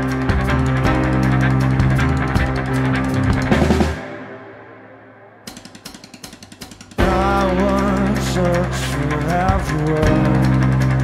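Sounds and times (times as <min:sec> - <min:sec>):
clicky percussion ticks: 0:00.0 - 0:03.9, 0:05.5 - 0:11.0
sustained tone: 0:00.0 - 0:05.5.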